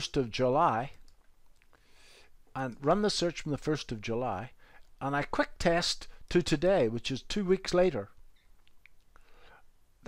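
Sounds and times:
soft breath: 0:01.7 - 0:02.4, 0:09.1 - 0:09.8.

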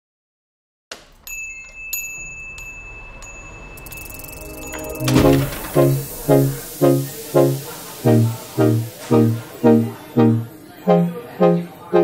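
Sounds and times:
high chime strikes: 0:01.4 - 0:06.7.

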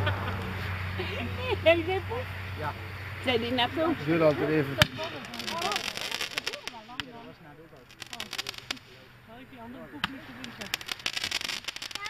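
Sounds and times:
firework crackling: 0:00.0 - 0:12.0.

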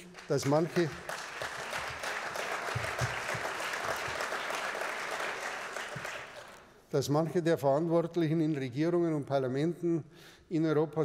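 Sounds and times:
audience applauding: 0:00.0 - 0:06.7.

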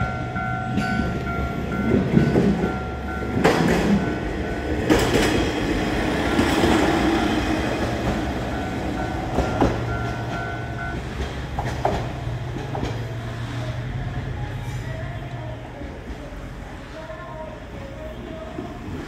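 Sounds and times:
level crossing warning bell: 0:00.0 - 0:11.3
train rumble and wheel knocks: 0:00.0 - 0:19.0.

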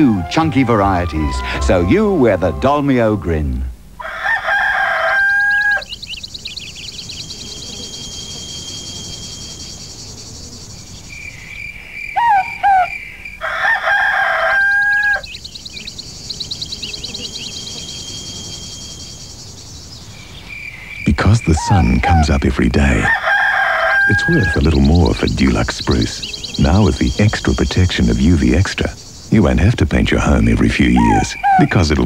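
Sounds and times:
rooster crowing: 0:00.0 - 0:02.0, 0:04.0 - 0:06.0, 0:12.1 - 0:15.4, 0:23.0 - 0:24.7.

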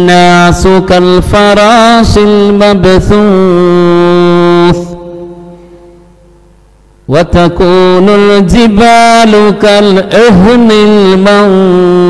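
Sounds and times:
man reciting long note: 0:00.0 - 0:06.2, 0:07.1 - 0:12.0.

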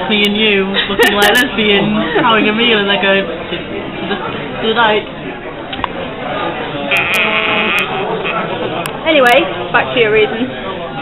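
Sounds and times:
murmur of busy pub: 0:00.0 - 0:11.0.

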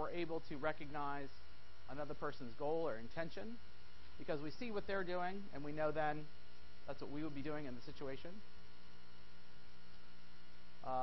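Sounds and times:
man talking: 0:00.0 - 0:03.6, 0:04.2 - 0:08.5
background hiss: 0:00.0 - 0:11.0
steady electrical hum: 0:00.0 - 0:11.0.

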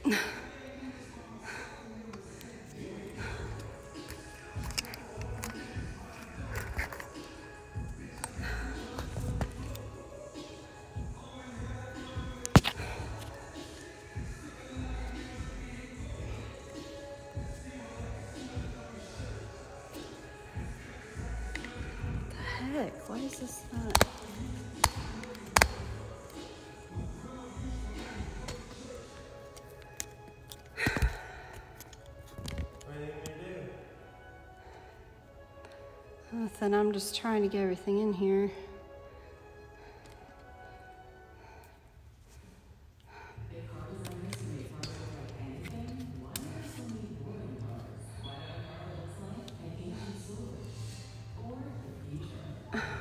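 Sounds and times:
background music: 0:00.0 - 0:53.0.

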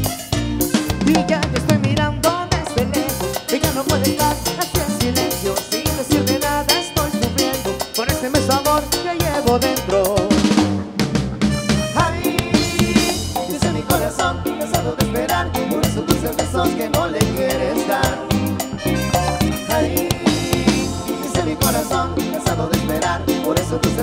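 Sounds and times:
drum kit and percussion beat: 0:00.0 - 0:24.0
electric guitar: 0:00.0 - 0:24.0
live dance band playing: 0:00.0 - 0:24.0
trumpet: 0:11.4 - 0:13.6, 0:17.9 - 0:22.4
saxophones: 0:11.4 - 0:23.6.

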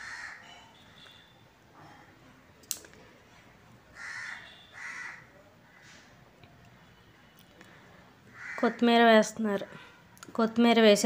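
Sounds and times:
crow cawing: 0:00.0 - 0:00.5, 0:03.9 - 0:06.0, 0:08.3 - 0:08.8.

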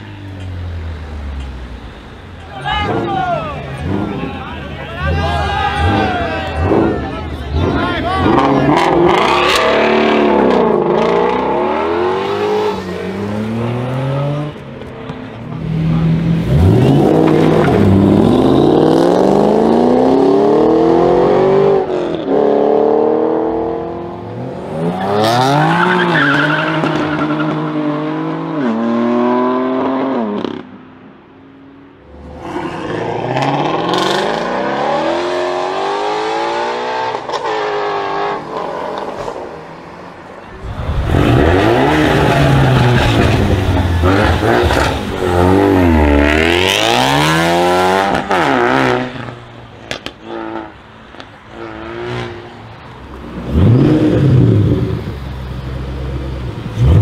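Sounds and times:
car engines revving hard: 0:00.0 - 0:30.9, 0:32.0 - 0:57.0.

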